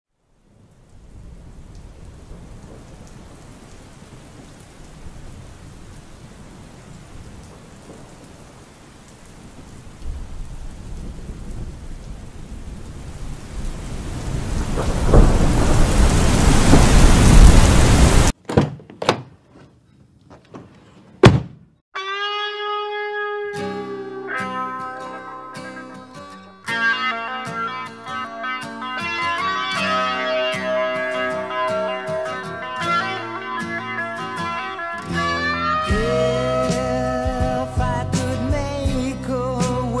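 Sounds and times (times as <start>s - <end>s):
rain: 0.1s - 18.4s, 29.0s - 40.0s
rumbling thunder: 0.6s - 8.7s, 9.3s - 18.3s
short knocks: 18.4s - 21.7s.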